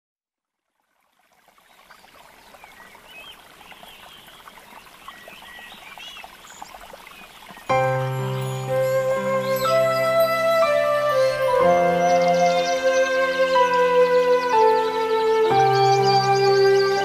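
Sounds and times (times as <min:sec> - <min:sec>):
trickling water: 0:00.4 - 0:17.0
bird chirps: 0:02.6 - 0:17.0
sustained music chords: 0:07.7 - 0:17.0.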